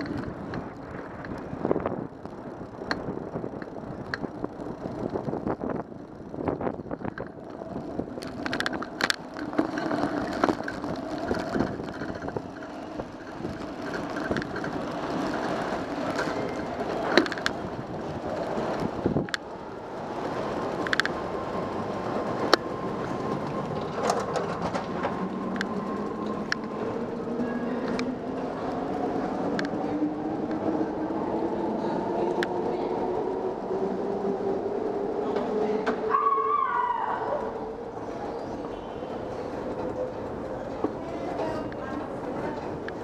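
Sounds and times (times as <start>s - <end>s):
sharp clicks and knocks: 7.0s - 17.6s, 20.8s - 21.2s.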